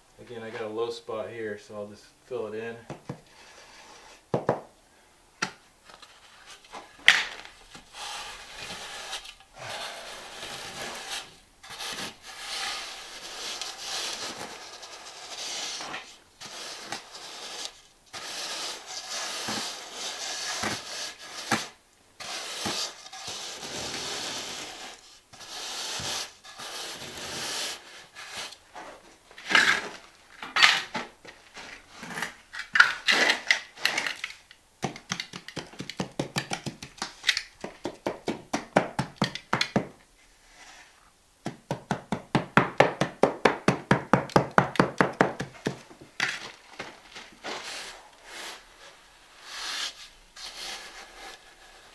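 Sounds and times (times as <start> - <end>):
straight edge scraping mortar: 7.7 - 30.9, 45.4 - 51.9.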